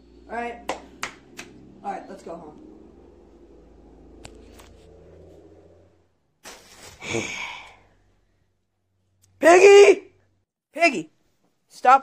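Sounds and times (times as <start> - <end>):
person sighing: 7.0 - 8.0.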